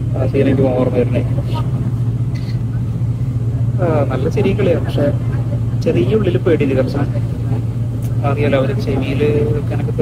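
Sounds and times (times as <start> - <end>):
airliner engines droning: 0.0 - 10.0.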